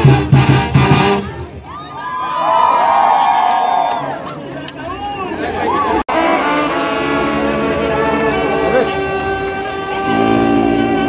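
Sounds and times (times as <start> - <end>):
brass band playing chords: 0.0 - 1.6, 6.0 - 11.0
trumpets: 0.0 - 1.6, 6.1 - 11.0
saxophones: 6.1 - 11.0.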